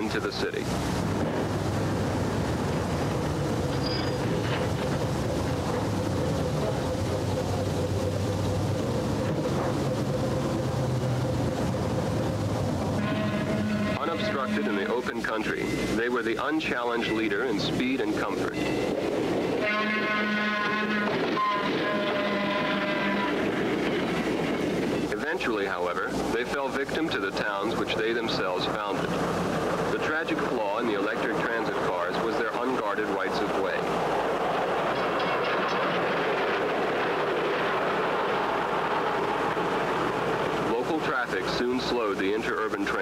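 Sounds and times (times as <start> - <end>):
train rumbling: 0.0 - 43.0
train horn blasts: 13.0 - 15.0, 19.5 - 23.5.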